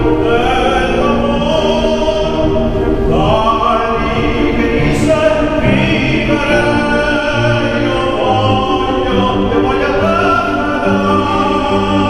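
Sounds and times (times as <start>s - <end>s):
grand piano accompaniment: 0.0s - 12.0s
man singing opera: 0.0s - 12.0s.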